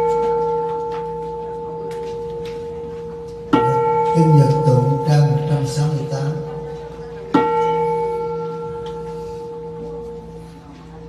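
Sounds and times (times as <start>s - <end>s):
bowl bell ringing: 0.0s - 11.0s.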